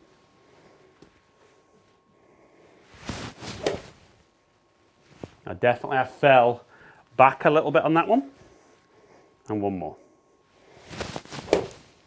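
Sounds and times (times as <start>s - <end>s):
golf club swishing through air: 2.9s - 4.0s, 10.8s - 12.0s.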